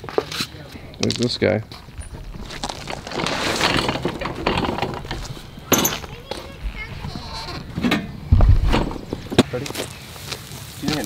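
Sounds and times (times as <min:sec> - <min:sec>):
branches and roots rustling: 0:00.0 - 0:11.0
heavy low thump: 0:05.7 - 0:09.5.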